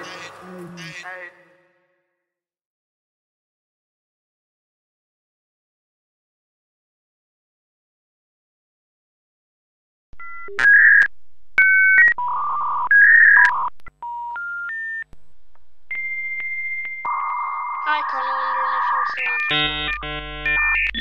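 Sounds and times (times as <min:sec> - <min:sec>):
steady high tone: 0:16.0 - 0:21.0.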